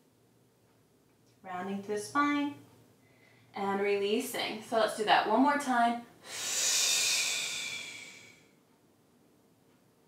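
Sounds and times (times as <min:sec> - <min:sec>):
woman exhaling breathily: 0:06.2 - 0:08.5.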